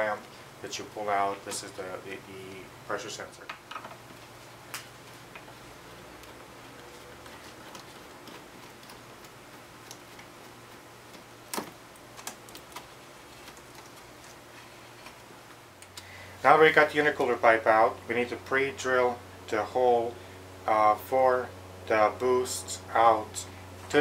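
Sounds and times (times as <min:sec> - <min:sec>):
faint low hum: 0:00.0 - 0:24.0.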